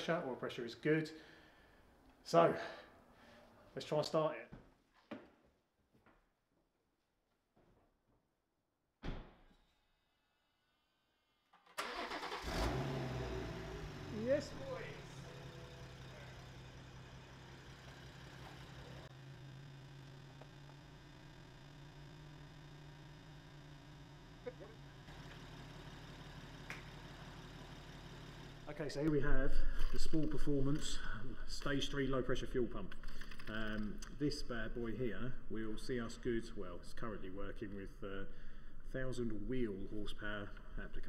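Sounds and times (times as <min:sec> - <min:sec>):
car engine starting and idling: 0:11.6 - 0:41.0.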